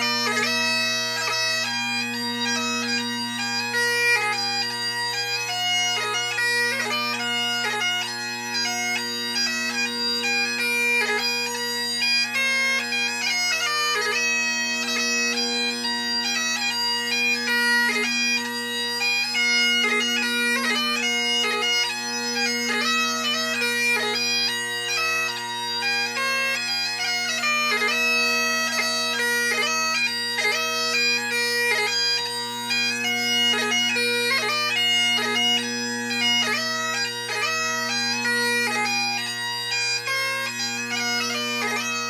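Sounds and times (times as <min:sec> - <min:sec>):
bagpipe chanter melody: 0:00.0 - 0:42.0
bagpipe drones humming: 0:00.0 - 0:42.0.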